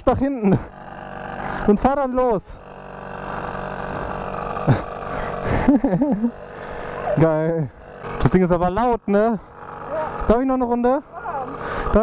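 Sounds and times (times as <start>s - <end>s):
small motorbike engine revving: 0.0s - 12.0s.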